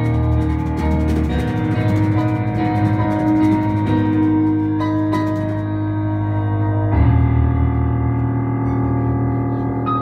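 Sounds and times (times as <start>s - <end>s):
deep loud chord: 0.0s - 10.0s
sustained droning chords: 0.0s - 10.0s.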